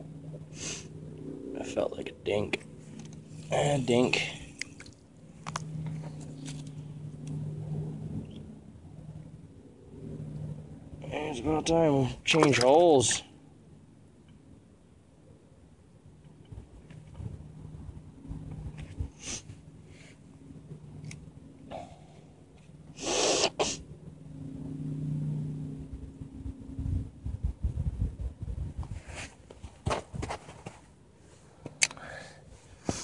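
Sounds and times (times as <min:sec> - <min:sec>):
man sneezing: 0:23.0 - 0:23.8.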